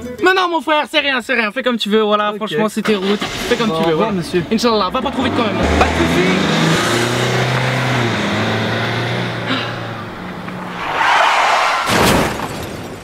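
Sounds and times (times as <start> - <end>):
car engine pulling away: 2.9 - 13.0
loud rush of noise: 9.7 - 13.0.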